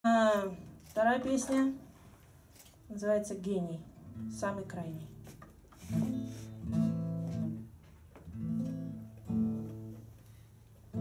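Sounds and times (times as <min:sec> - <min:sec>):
acoustic guitar strummed chords: 0:05.2 - 0:10.2.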